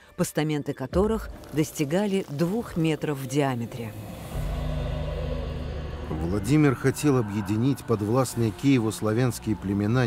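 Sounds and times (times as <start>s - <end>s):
low sustained film score chord: 3.6s - 10.0s.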